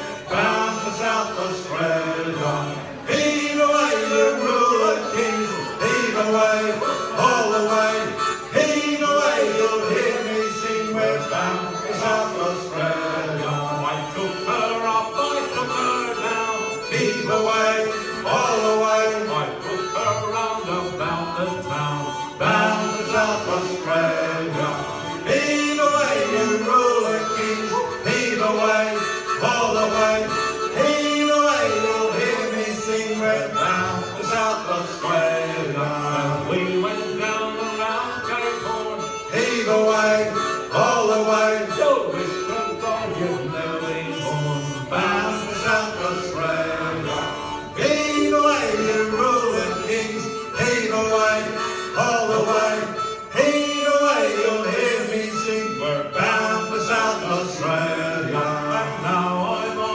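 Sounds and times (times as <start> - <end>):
banjo: 0.0 - 59.9
harmonica melody: 0.0 - 59.9
strummed acoustic guitars: 0.0 - 59.9.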